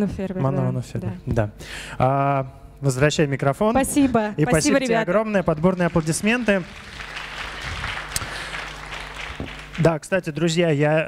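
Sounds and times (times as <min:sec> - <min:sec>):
audience applauding: 0:04.7 - 0:10.1.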